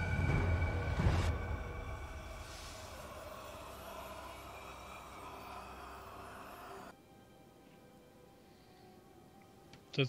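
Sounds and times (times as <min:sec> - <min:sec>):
soft held drone: 0:00.0 - 0:07.0.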